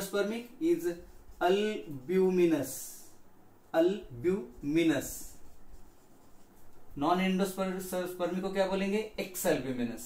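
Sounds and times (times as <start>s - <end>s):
person speaking: 0.0s - 10.0s
pen scratching on paper: 4.4s - 7.0s.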